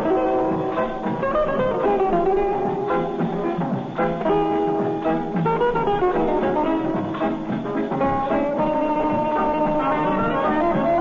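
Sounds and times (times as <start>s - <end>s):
orchestra playing busy melody: 0.0s - 11.0s.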